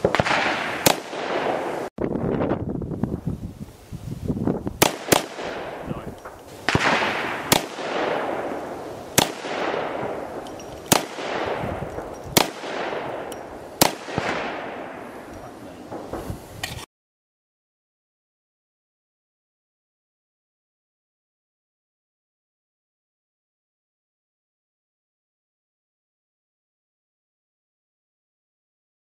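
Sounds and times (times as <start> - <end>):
pistol shots with echo: 0.0 - 1.9, 4.8 - 6.1, 6.7 - 15.1.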